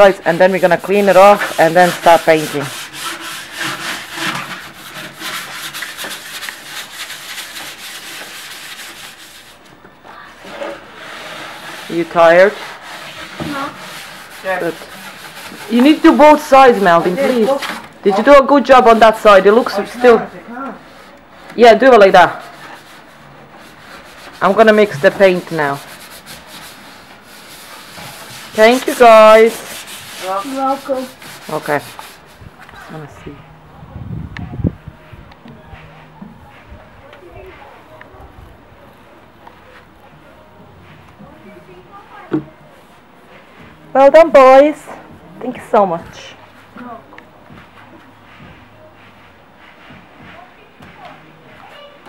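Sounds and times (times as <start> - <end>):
sandpaper rubbing on wood: 0.0 - 9.7, 10.3 - 33.1.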